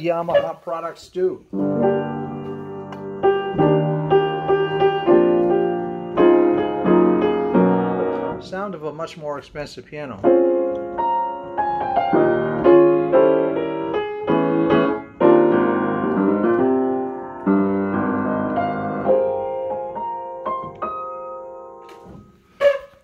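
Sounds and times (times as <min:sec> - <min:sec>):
piano chords and melody: 0:01.5 - 0:09.0, 0:10.2 - 0:22.6.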